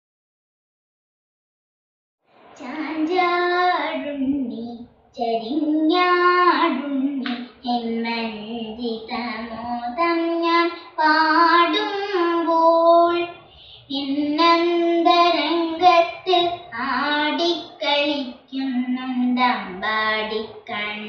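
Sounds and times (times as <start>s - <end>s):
girl singing devotional song: 2.3s - 21.0s.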